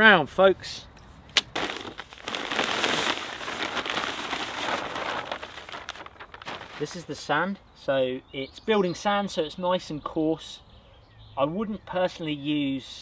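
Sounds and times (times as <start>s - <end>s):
gritty crunching and scraping: 1.3s - 7.2s.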